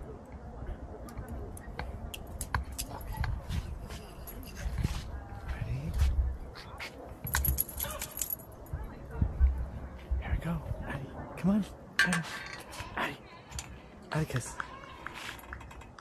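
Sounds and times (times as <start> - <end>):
wind rumble on microphone: 1.8 - 6.6, 8.6 - 11.2.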